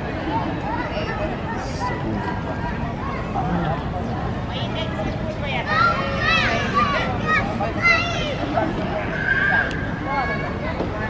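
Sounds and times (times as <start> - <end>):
voices of people and children: 0.0 - 11.0.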